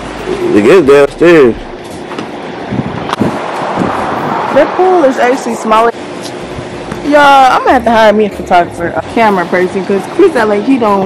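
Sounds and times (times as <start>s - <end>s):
wind noise on microphone: 1.6s - 4.9s.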